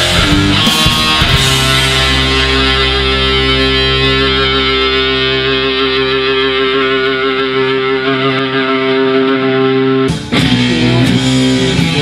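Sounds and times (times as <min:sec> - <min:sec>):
distorted electric guitar: 0:00.0 - 0:12.0.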